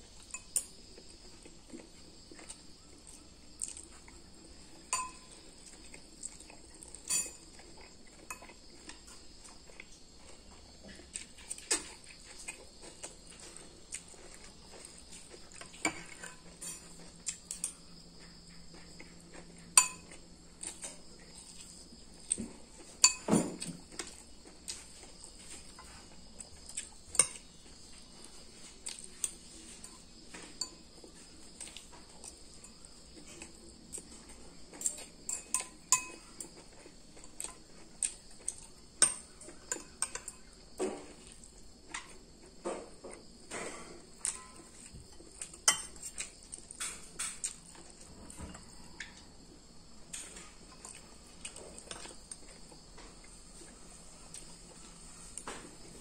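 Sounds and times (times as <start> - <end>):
cutlery clinking on ceramic bowl: 4.9 - 5.4, 7.0 - 7.6, 19.8 - 20.2, 23.0 - 23.7, 27.1 - 27.4, 34.9 - 36.3, 39.0 - 41.1, 43.5 - 47.5.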